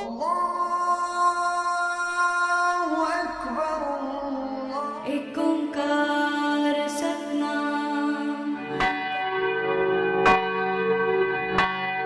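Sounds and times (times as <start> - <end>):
held chords background music: 5.0 - 12.0.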